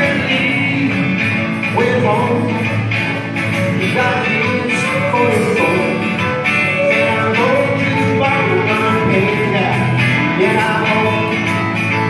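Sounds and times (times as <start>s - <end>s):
strummed acoustic guitars: 0.0s - 12.0s.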